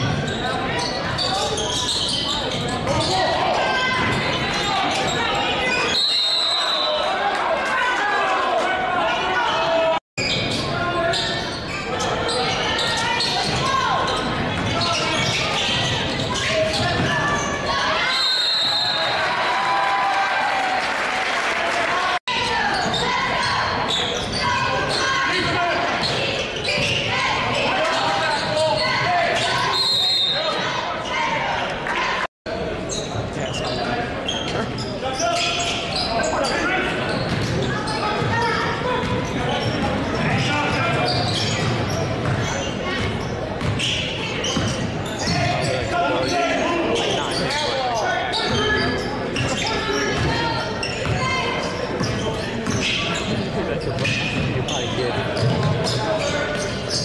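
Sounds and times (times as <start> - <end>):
echoing crowd voices: 0.0 - 57.0.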